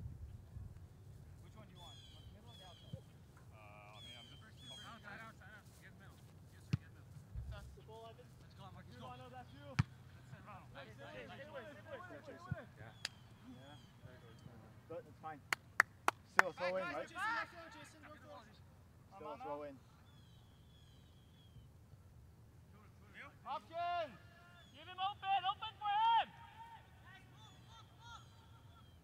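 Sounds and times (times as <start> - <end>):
players shouting: 16.6 - 18.4, 23.5 - 28.7.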